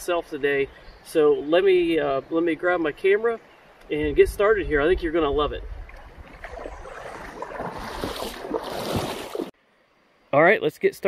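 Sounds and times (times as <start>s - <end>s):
wind buffeting microphone: 4.0s - 9.2s
footsteps wading through water: 5.7s - 9.6s
water splashing: 5.7s - 9.6s.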